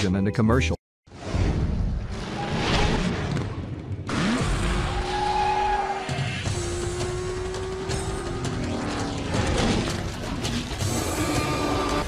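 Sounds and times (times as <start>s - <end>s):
music: 0.0s - 0.8s, 5.5s - 12.0s.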